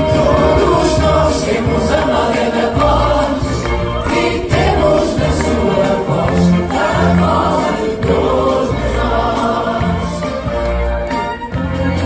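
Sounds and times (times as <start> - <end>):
group of singers: 0.0 - 12.0
symphony orchestra: 0.0 - 12.0.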